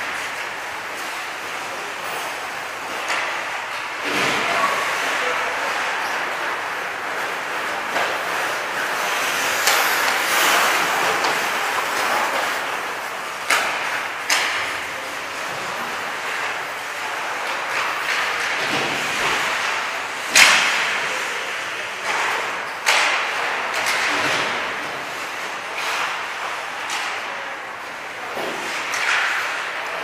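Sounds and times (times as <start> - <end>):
hockey sticks striking pucks: 0.0 - 30.0
skate blades scraping ice: 0.0 - 30.0.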